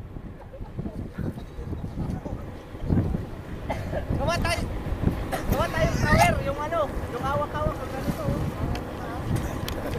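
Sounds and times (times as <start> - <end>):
wind buffeting microphone: 0.0 - 9.9.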